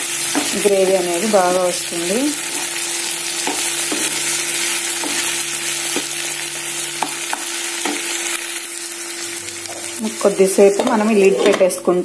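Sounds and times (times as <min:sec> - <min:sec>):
vegetables sizzling in oil: 0:00.0 - 0:12.0
spatula stirring in pan: 0:02.3 - 0:06.3.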